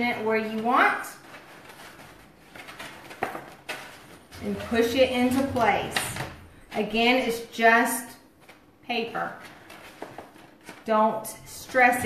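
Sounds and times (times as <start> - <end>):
stiff paper rustling: 0.4 - 7.4, 8.2 - 12.0
sharp paper crackles: 0.5 - 6.4, 8.3 - 12.0.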